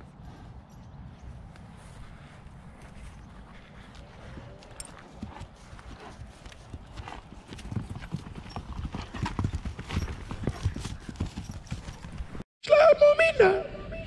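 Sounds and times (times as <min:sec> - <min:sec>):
horse hooves on dirt: 0:00.0 - 0:12.4.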